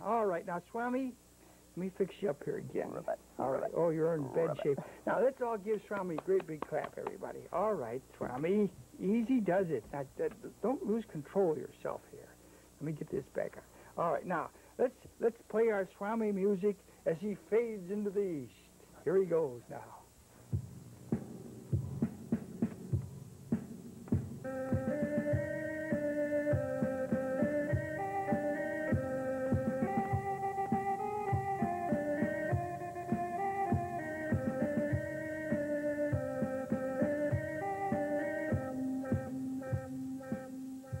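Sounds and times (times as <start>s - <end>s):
percussive beat: 5.6s - 7.4s, 20.5s - 41.0s
music melody: 20.6s - 41.0s.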